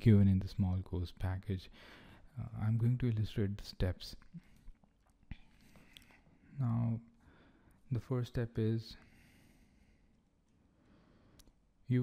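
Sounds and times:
soft clicks: 11.3 - 11.6.

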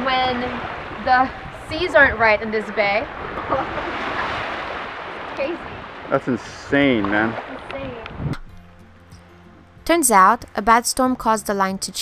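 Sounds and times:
small waves washing over sand: 0.0 - 8.1.

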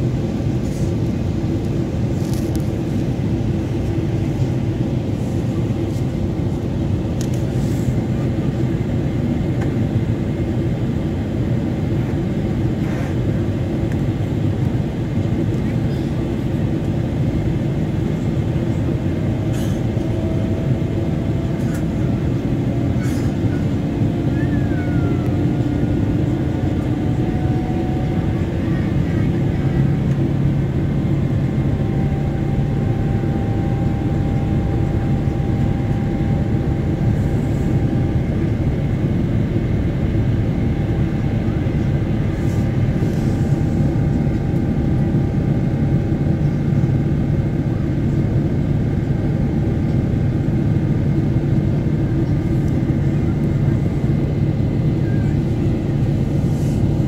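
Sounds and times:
airliner cabin engine roar: 0.0 - 57.0.

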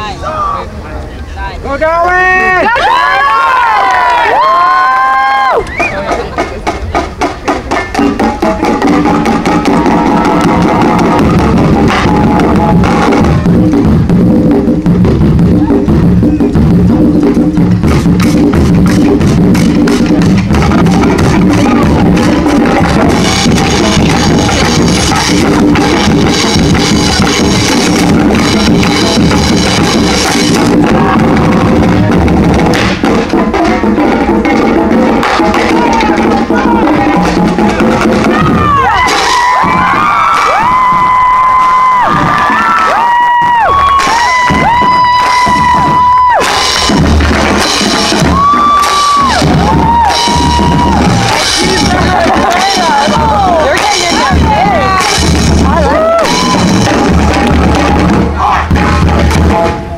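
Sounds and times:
marching drums: 1.8 - 59.9
sustained brass chords: 56.2 - 59.9.

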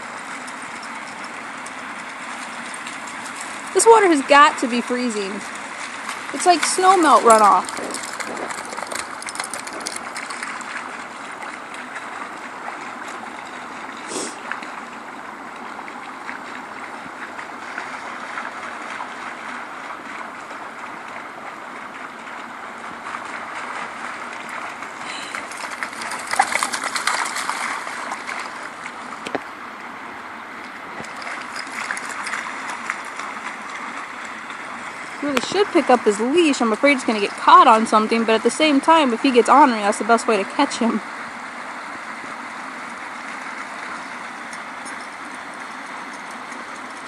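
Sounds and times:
water flowing over weir: 0.0 - 47.0.

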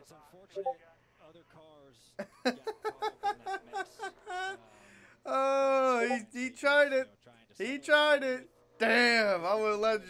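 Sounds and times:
man laughing: 2.2 - 4.6.

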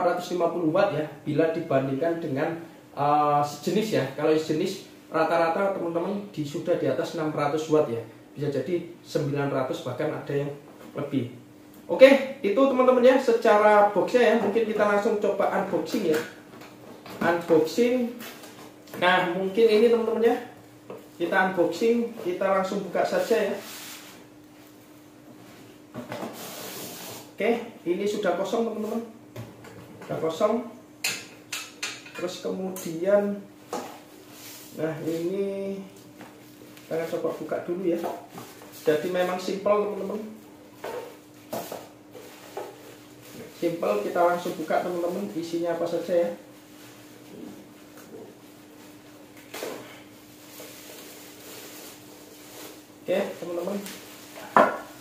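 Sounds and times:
plastic bag rustling and crinkling: 50.3 - 54.4.

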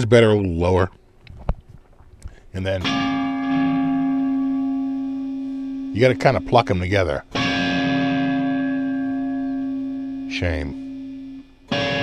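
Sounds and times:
electric guitar bell-like chime: 2.8 - 12.0.

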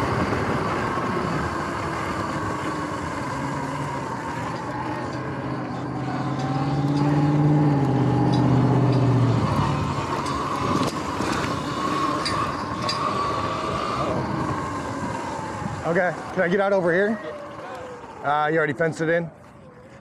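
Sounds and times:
tyre and wind noise: 0.0 - 18.3
electric dirt bike motor whine: 0.0 - 20.0
road traffic drone: 0.0 - 20.0.

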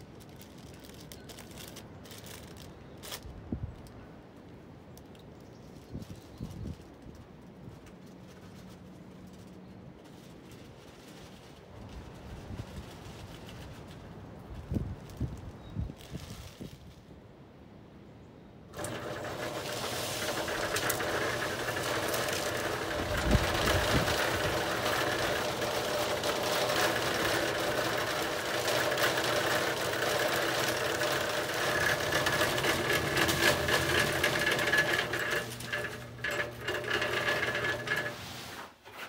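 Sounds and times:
cement mixer running: 18.7 - 38.6.

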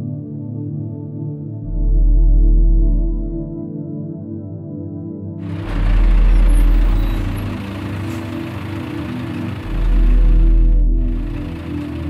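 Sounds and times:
ambient background music: 0.0 - 12.0
heavy vehicles rumbling: 5.4 - 12.0
traffic hiss: 5.5 - 12.0.

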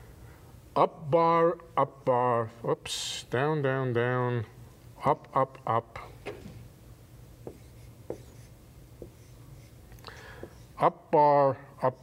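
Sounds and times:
faint room hum: 0.0 - 12.0
chalk tapping and scraping: 7.4 - 9.8.

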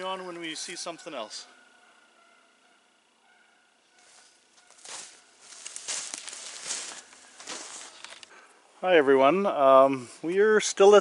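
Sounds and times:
footsteps crunching in snow: 4.0 - 8.2.

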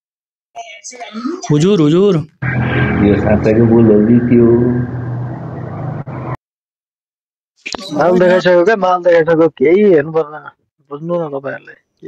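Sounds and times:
buzzy microphone hum: 2.4 - 6.4.

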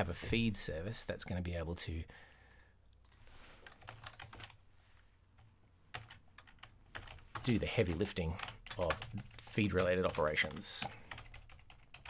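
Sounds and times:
keyboard typing: 2.5 - 4.6, 5.4 - 12.0.

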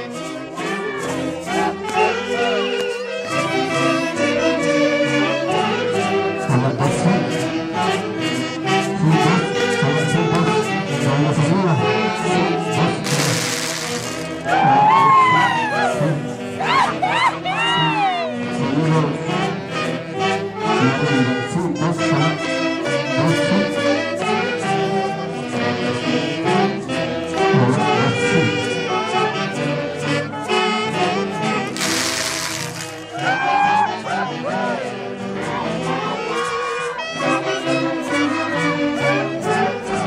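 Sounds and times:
brass band playing dance music: 12.8 - 14.7, 30.5 - 33.4
loud hiss: 13.1 - 14.4, 31.8 - 33.1.

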